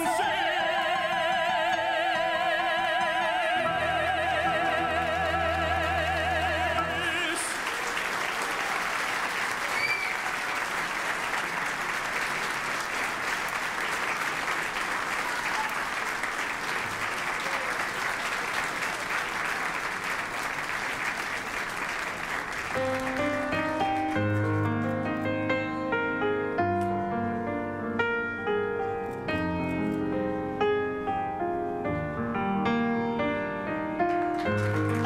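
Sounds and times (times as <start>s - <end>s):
music: 0.0s - 8.0s, 22.8s - 35.0s
audience applauding: 4.6s - 25.3s, 34.0s - 35.0s.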